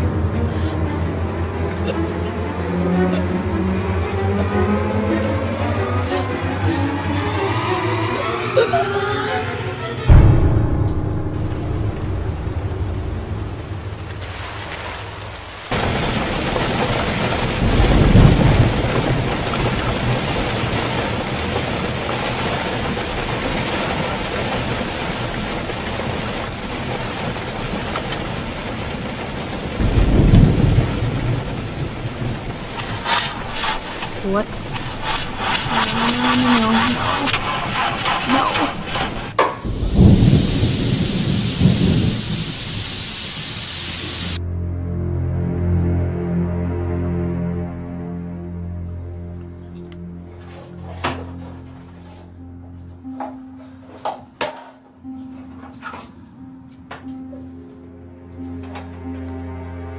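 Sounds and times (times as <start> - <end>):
steady rushing noise: 10.1 - 44.4
heavy low rumbles: 10.1 - 50.1
bright hiss: 39.5 - 44.4.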